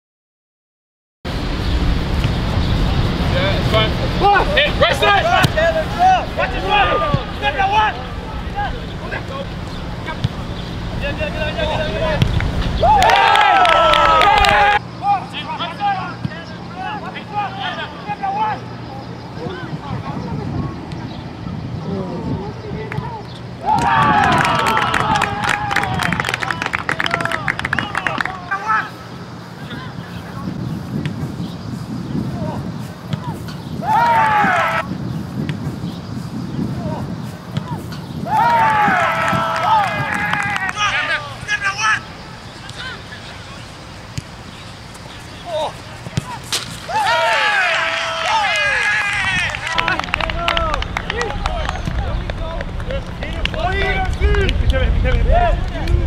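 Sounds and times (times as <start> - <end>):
outdoor background rumble: 1.3 - 56.0
distant players shouting: 4.1 - 20.1, 22.2 - 30.0, 32.2 - 34.9, 36.7 - 56.0
people shouting: 4.2 - 8.8, 12.8 - 16.0, 23.6 - 26.1, 33.2 - 34.9, 37.6 - 42.1, 45.4 - 51.6.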